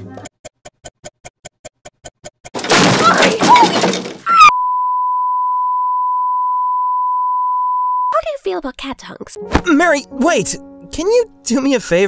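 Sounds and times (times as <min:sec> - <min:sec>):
censor bleep: 0:04.4 - 0:08.2.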